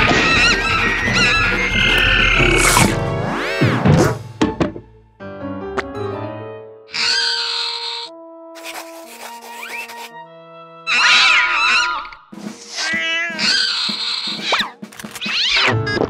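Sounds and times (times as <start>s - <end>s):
cartoon cat hissing: 2.5s - 3.0s, 12.6s - 14.5s
cartoon cat yowls: 6.9s - 8.1s, 10.9s - 15.7s.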